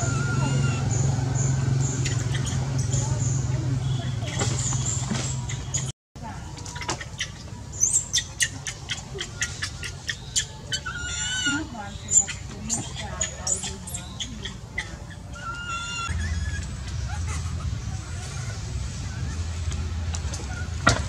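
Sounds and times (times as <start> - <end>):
baby monkey squealing: 0.0 - 5.9, 6.6 - 19.5.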